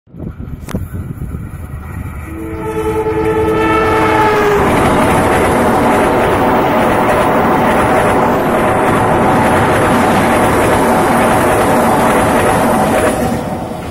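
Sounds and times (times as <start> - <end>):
train wheels rumbling on rail: 0.1 - 13.9
locomotive horn: 2.0 - 5.6.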